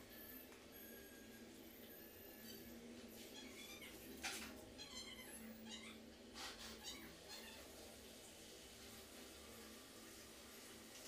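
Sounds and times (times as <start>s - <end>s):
faint high-pitched animal calls: 0.2s - 7.7s.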